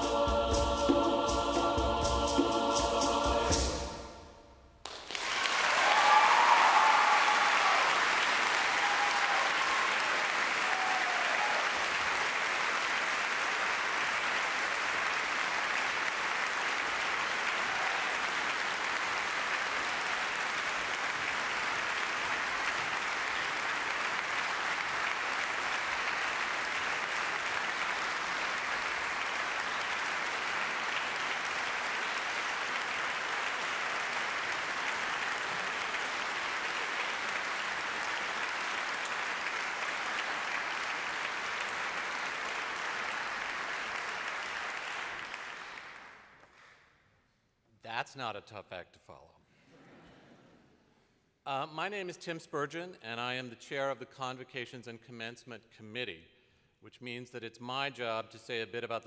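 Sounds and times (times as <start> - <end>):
choir singing held chord: 0.0 - 4.4
audience applause: 4.8 - 46.8
audience whoops: 5.2 - 12.2, 17.4 - 18.5.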